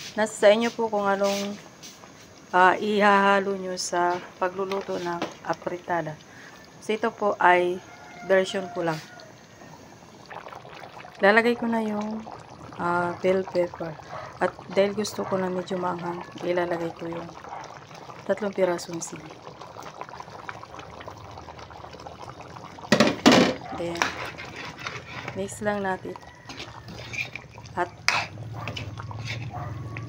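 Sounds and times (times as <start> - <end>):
stew bubbling in a pan: 0.0 - 30.0
metal spoon scraping pan: 23.8 - 25.7, 26.5 - 29.8.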